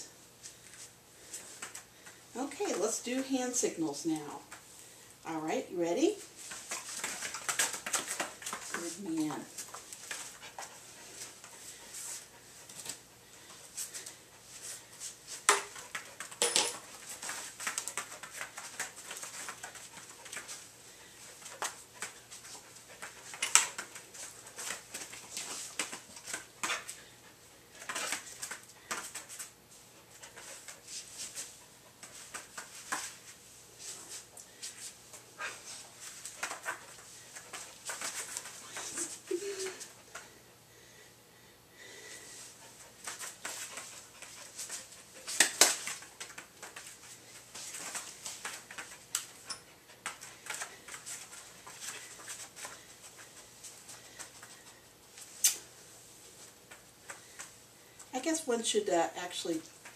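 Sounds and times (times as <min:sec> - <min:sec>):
dog clicks and scuffs: 0:06.4 - 0:13.1, 0:13.7 - 0:27.1, 0:27.7 - 0:40.3, 0:42.6 - 0:55.7.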